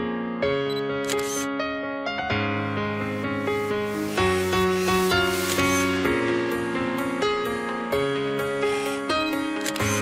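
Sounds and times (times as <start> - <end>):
piano background music: 0.0 - 10.0
camera shutter sound effect: 0.7 - 1.5, 3.9 - 6.0, 8.8 - 10.0.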